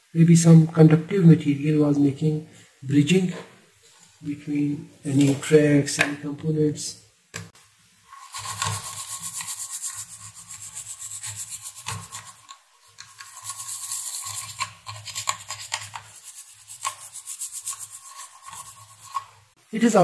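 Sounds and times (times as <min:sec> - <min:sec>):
small brush scrubbing circuit board: 0:08.0 - 0:19.6.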